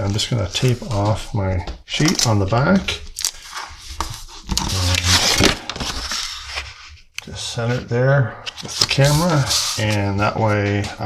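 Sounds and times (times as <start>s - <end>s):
tape pressing and scraping: 1.9s - 7.7s, 8.5s - 10.9s
paper rustling: 2.0s - 7.8s, 8.4s - 11.0s.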